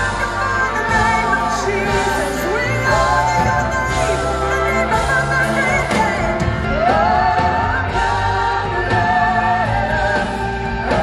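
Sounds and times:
singer and live band performing: 0.0s - 11.0s.

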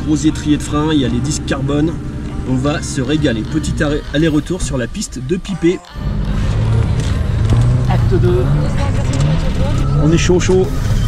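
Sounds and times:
car engine running at low revs: 0.0s - 11.0s.

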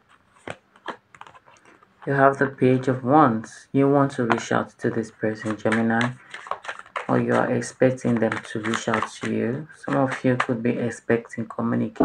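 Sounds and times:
cards being shuffled: 0.0s - 3.0s, 4.2s - 11.0s.

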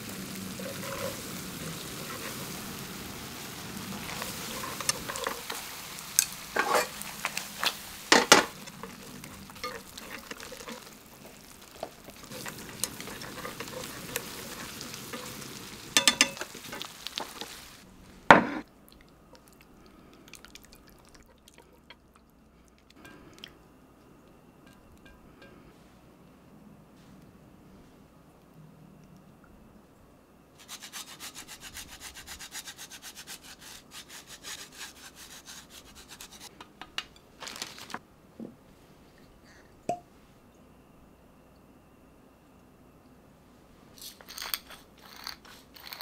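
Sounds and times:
sauce sizzling in frying pan: 0.0s - 18.6s
chopsticks clacking against pan: 16.0s - 17.4s.

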